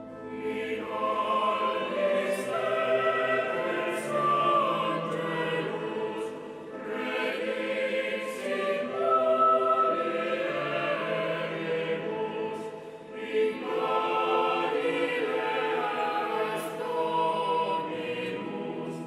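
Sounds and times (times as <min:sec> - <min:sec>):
choir singing sacred music: 0:00.0 - 0:19.0.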